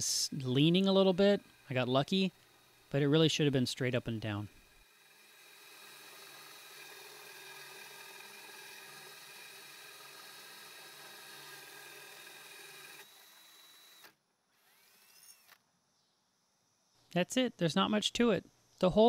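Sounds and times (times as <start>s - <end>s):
drill with hole saw cutting glass: 0.2s - 15.6s.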